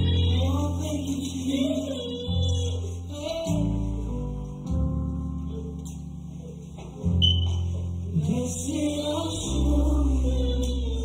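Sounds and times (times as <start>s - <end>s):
person singing: 0.0s - 7.1s, 7.9s - 11.0s
sustained gospel chords: 0.0s - 11.0s.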